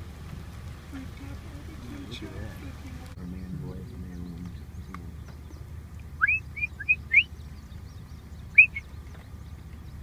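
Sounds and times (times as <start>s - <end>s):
songbird singing: 0.0s - 10.0s.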